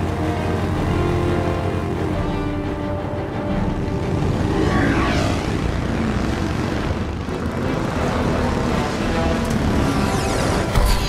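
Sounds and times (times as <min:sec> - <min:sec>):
motorcycle passing by: 0:00.0 - 0:10.8
film score music: 0:00.0 - 0:11.0
motorcycle engines running: 0:00.0 - 0:11.0.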